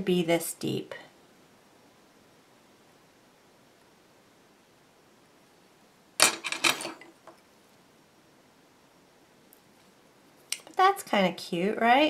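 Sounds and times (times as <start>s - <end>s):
metal tools clattering on surface: 6.2s - 7.1s.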